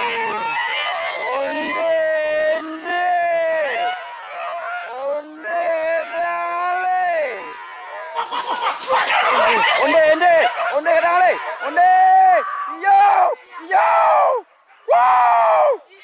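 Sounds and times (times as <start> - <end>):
hunters shouting calls: 0.0 - 16.0.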